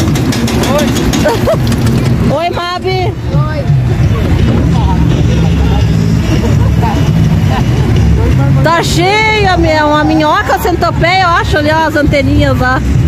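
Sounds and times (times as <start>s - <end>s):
roller coaster rumbling on track: 0.0s - 13.0s.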